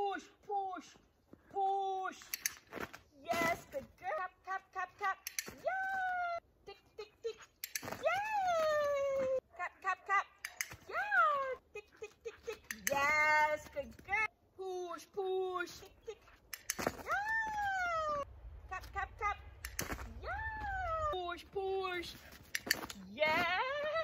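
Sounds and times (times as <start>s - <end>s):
woman calling to a dog: 0.0s - 2.2s, 3.2s - 16.3s, 17.0s - 22.2s, 23.1s - 24.0s
sharp clicks: 2.2s - 2.8s, 5.0s - 5.6s, 7.5s - 8.0s, 10.4s - 10.8s, 12.5s - 13.3s, 16.4s - 17.1s, 19.5s - 20.2s, 22.2s - 23.0s.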